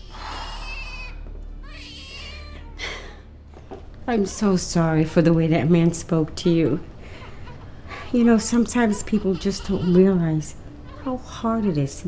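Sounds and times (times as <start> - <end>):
baby crying: 0.0 - 3.1, 8.6 - 11.9.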